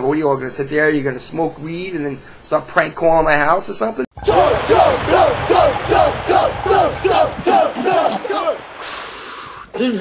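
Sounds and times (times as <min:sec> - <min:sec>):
men yelling: 0:04.2 - 0:08.8.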